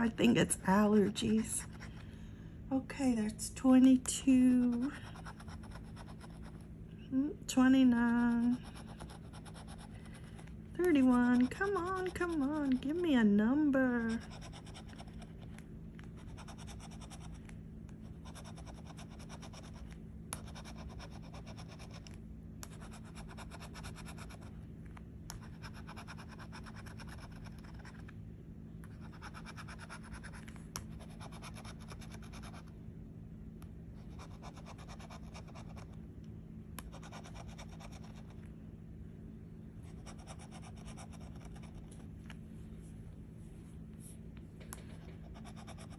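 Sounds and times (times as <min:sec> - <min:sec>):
scratching lottery ticket: 0:04.2 - 0:06.7, 0:07.5 - 0:24.6, 0:25.3 - 0:28.1, 0:28.9 - 0:32.7, 0:34.0 - 0:36.0, 0:36.9 - 0:38.4, 0:39.9 - 0:42.1, 0:44.8 - 0:45.9.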